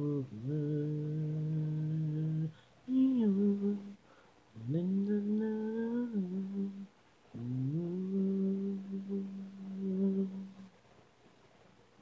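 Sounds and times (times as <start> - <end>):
a cappella voices holding a note: 0.0 - 10.8.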